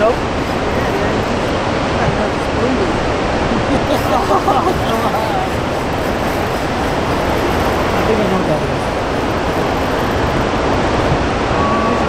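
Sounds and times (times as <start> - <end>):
water roaring through spillway: 0.0 - 12.0.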